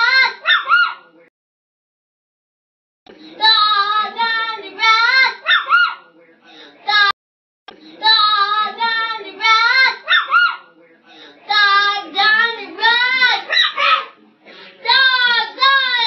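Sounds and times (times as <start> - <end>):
child vocalising sing-song: 3.3 - 5.4, 7.9 - 10.1, 11.5 - 14.1, 14.9 - 16.0.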